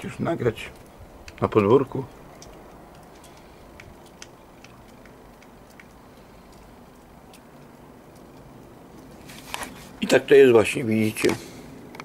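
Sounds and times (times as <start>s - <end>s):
background hiss: 0.0s - 12.0s
faint clicks: 2.1s - 9.1s.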